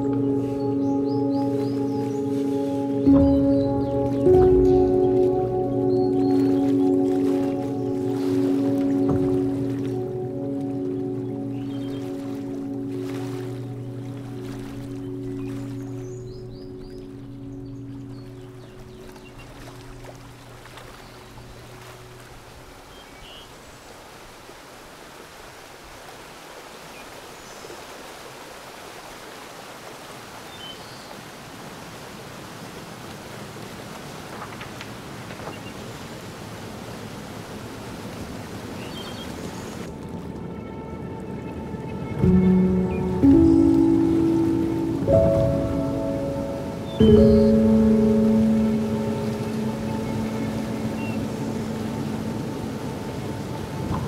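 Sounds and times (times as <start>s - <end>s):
ambient music low chords: 0.0s - 23.3s, 39.8s - 54.0s
soft wash of noise: 0.0s - 54.0s.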